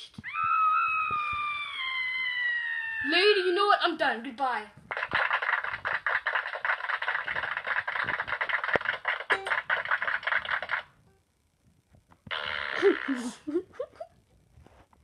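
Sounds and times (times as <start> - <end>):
dense crackling noise: 0.0 - 15.0.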